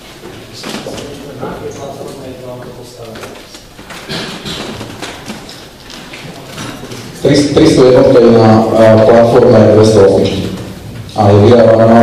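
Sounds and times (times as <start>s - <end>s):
man talking indistinctly: 7.2s - 12.0s.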